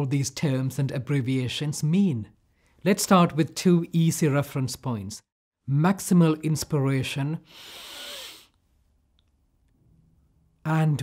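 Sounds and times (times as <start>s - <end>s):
man inhaling deeply: 7.4s - 8.6s.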